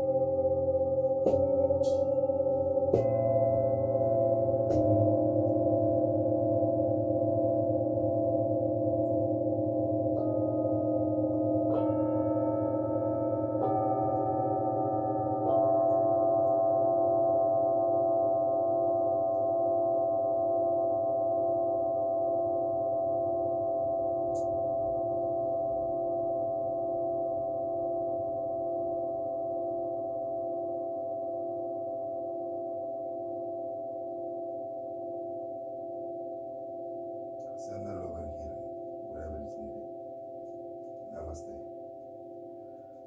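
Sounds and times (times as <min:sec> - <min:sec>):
mallet striking bowl: 0:00.0 - 0:06.4
metal singing bowls ringing: 0:00.0 - 0:30.2.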